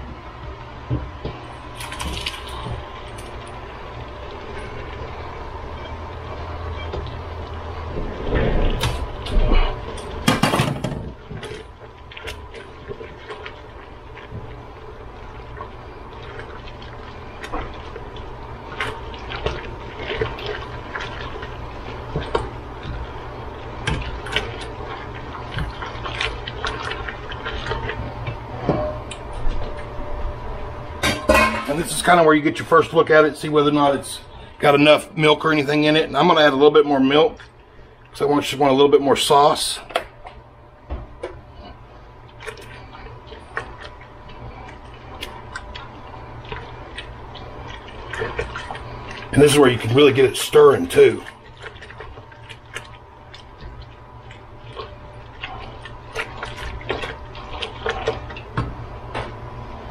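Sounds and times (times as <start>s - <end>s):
steady low hum: 0.0s - 59.9s
wet sloshing: 11.0s - 59.9s.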